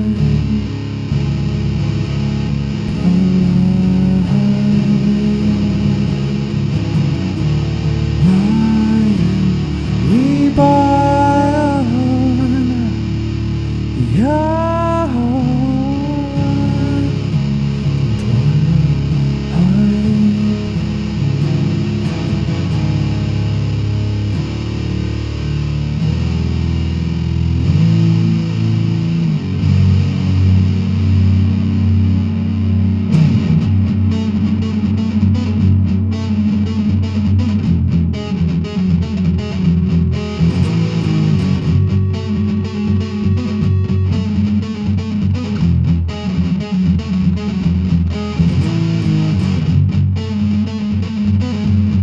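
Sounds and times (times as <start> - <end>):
goth rock guitars and bass: 0.0 - 52.0.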